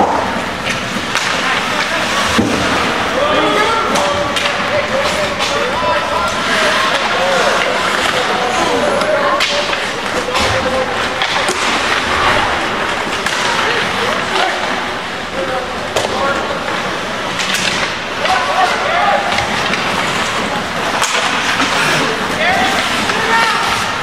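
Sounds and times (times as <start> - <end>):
hockey sticks and puck clacking: 0.0 - 24.0
skates scraping ice: 0.0 - 24.0
voices: 0.0 - 24.0.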